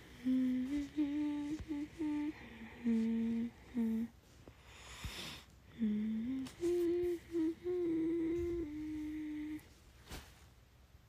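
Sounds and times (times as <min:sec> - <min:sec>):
woman humming: 0:00.0 - 0:04.1, 0:05.7 - 0:09.8.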